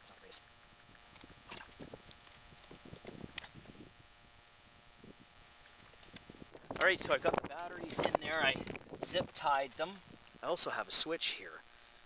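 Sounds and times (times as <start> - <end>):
wires rustling: 0.8 - 10.6.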